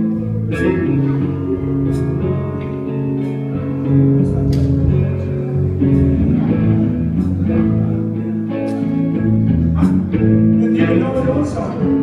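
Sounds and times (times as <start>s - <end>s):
bass guitar: 0.0s - 12.0s
guitar playing chords: 0.0s - 12.0s.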